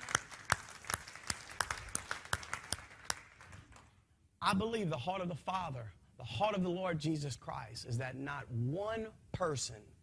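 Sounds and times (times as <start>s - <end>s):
audience hand clapping: 0.0s - 4.0s.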